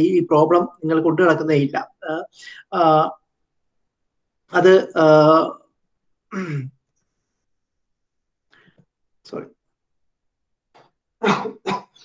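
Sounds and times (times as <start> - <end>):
man coughing: 11.2 - 12.0.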